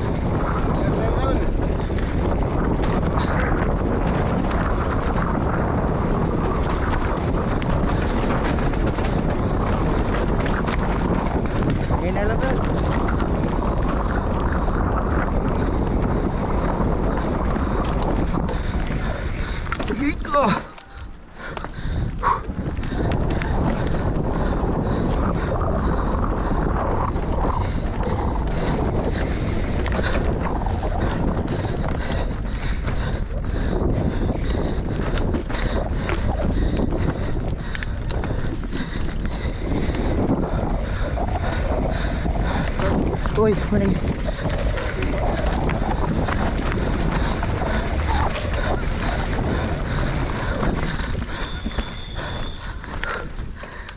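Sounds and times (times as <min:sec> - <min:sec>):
bike clicks and rattles: 0:00.0 - 0:53.9
tyre noise on dirt: 0:00.0 - 0:53.9
wind rushing over microphone: 0:00.0 - 0:53.9.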